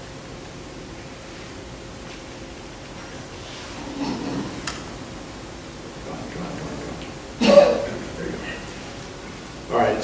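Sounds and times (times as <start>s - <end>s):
room recording hiss: 0.0s - 10.0s
faint low murmur: 0.9s - 10.0s.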